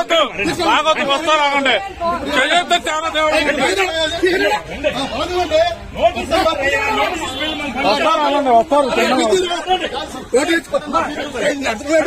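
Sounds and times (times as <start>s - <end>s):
people talking loudly: 0.0s - 12.0s.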